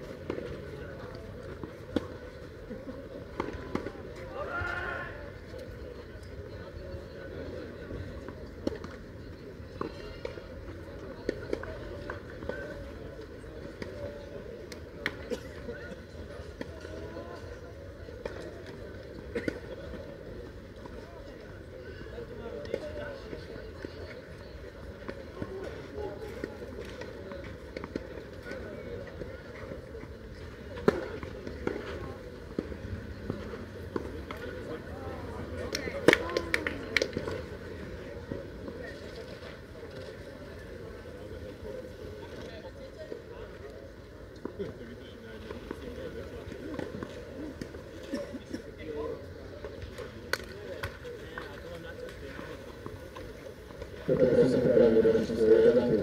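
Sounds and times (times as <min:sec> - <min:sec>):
faint indistinct voices: 0:00.0 - 0:56.0.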